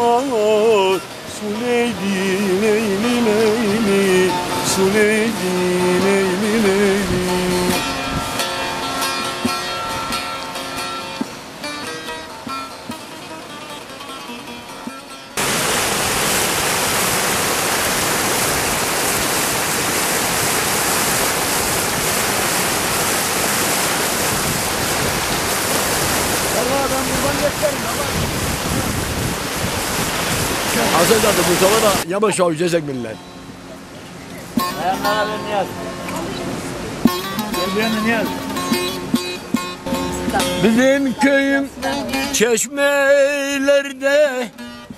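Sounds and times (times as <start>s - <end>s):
person singing: 0.0s - 7.9s, 40.2s - 44.6s
whitewater rushing over rocks: 0.0s - 32.7s
saz strumming: 0.0s - 44.9s.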